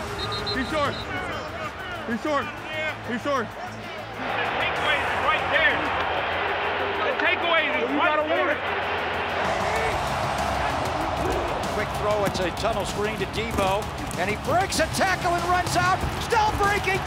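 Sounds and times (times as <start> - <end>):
stadium crowd cheering: 0.0 - 17.0
voices shouting: 0.0 - 17.0.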